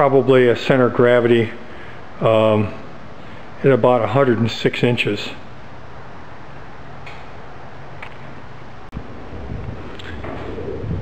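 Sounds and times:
background hum and hiss: 0.0 - 11.0
low rumbling noise: 0.0 - 11.0.

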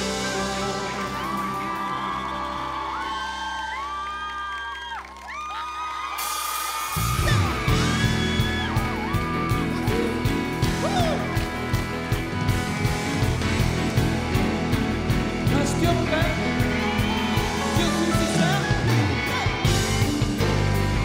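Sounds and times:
live band music: 0.0 - 4.0, 6.1 - 21.0
crowd screaming and cheering: 0.0 - 21.0
loud drums and bass: 6.2 - 21.0.

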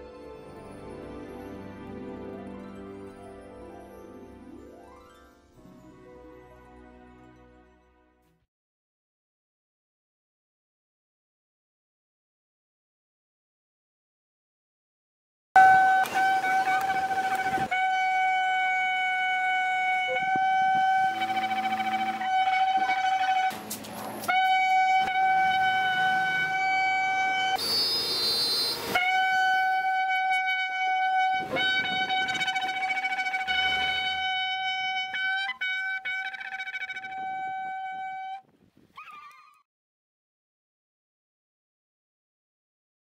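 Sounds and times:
shofar sustained note: 15.6 - 38.4.

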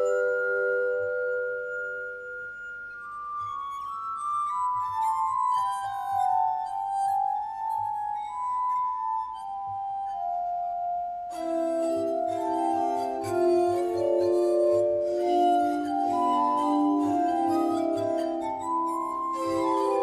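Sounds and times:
glass harmonica ringing tones: 0.0 - 20.0.

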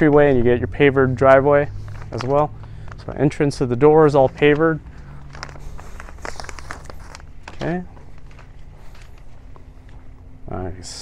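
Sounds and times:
faint low hum: 0.0 - 11.0
small clicks and rustles: 4.6 - 10.0.

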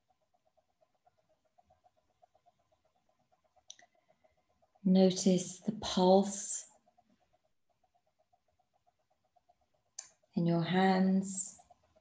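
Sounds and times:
fast even ticking: 0.0 - 12.0.

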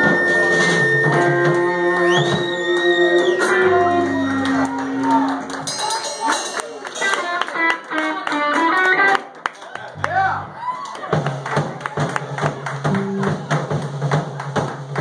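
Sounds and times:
audience clapping: 1.5 - 15.0.

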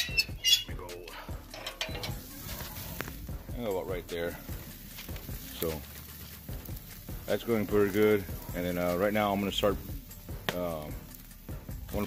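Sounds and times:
grill crank and cable squeaking: 0.0 - 3.2.

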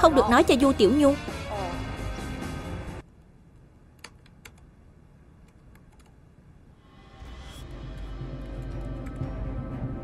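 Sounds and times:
laptop keys tapping: 4.0 - 4.7, 5.4 - 6.2.

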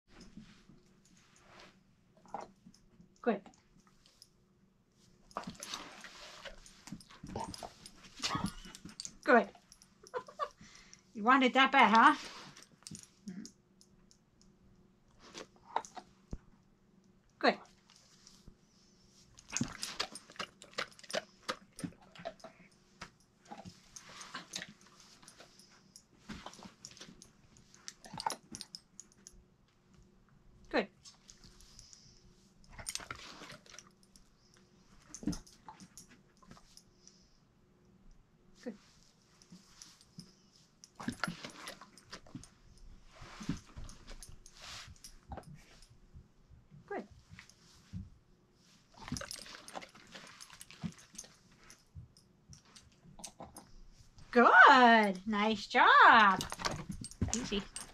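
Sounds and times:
dog sniffing and snuffling: 5.2 - 9.8, 11.9 - 13.4, 17.8 - 29.2, 38.8 - 46.0, 47.1 - 51.9
dog snuffling and mouthing: 48.9 - 51.8.

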